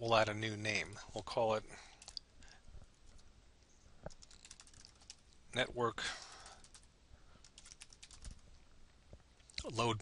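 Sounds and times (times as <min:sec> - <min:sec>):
keyboard typing: 0:01.9 - 0:02.2, 0:04.1 - 0:05.3, 0:06.2 - 0:08.4.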